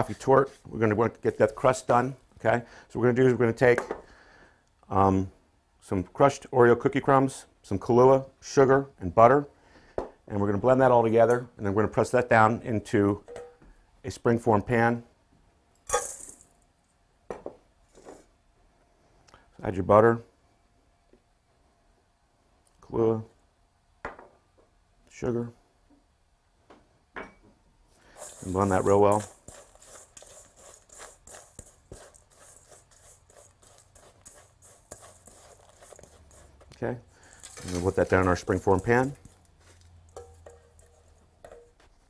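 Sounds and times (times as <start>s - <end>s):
crumbs rattling into metal bowl: 15.9s - 16.5s, 28.2s - 41.8s.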